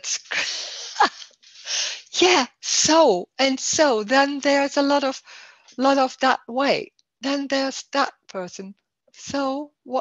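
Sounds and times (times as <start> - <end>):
woman laughing: 0.2 - 2.0.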